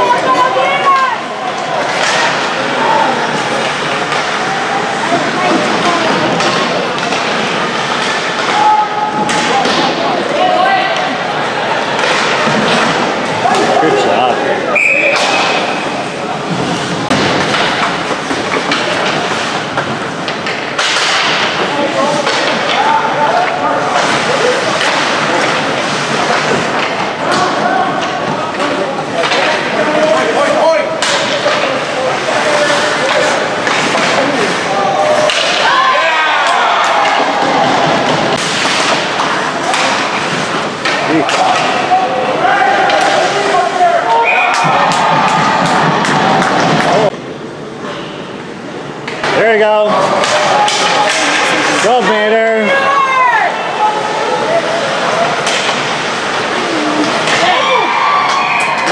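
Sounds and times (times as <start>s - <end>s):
pucks and sticks knocking boards: 0.0s - 11.2s, 11.9s - 14.3s, 15.0s - 43.6s, 44.2s - 47.2s, 49.0s - 52.7s, 55.0s - 58.9s
crowd calling and shouting: 0.0s - 58.9s.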